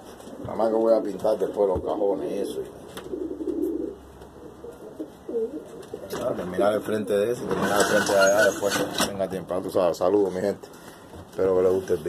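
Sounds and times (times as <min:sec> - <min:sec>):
pigeons cooing: 0:00.0 - 0:08.6.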